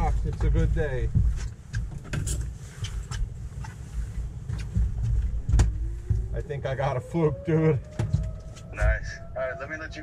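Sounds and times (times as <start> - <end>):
light clicks and knocks: 0.0 - 6.4
wind rumble: 0.0 - 10.0.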